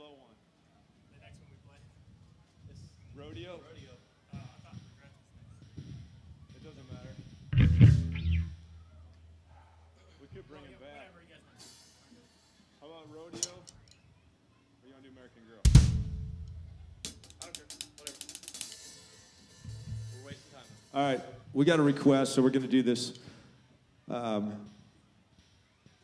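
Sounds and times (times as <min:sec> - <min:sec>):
faint talk: 0:00.0 - 0:15.7
hi-hat and cymbal taps: 0:05.7 - 0:09.5, 0:15.7 - 0:21.4
drum kit hits: 0:07.5 - 0:08.9, 0:15.7 - 0:21.2
low bass note ringing: 0:07.6 - 0:08.8.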